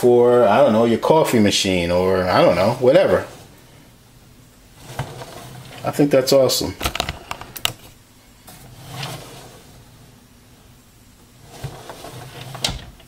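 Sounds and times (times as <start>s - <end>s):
soft brushing: 2.0s - 4.0s, 4.6s - 6.8s, 7.8s - 12.6s.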